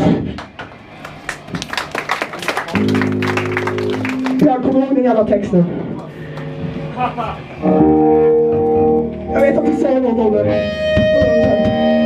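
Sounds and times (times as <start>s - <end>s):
electric guitar strumming: 2.7s - 12.0s
guitar chord ringing: 2.7s - 12.0s.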